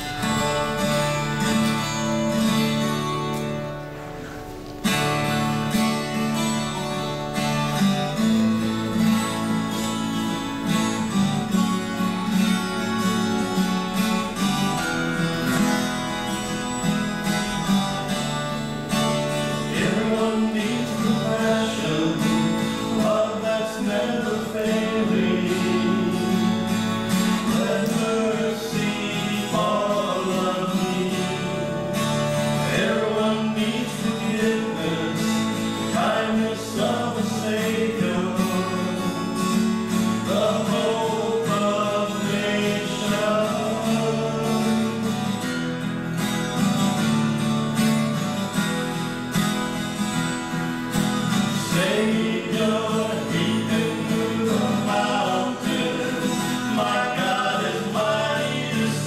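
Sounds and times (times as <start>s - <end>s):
acoustic guitar strumming: 0.0s - 59.0s
men singing: 19.4s - 45.2s, 51.5s - 59.0s.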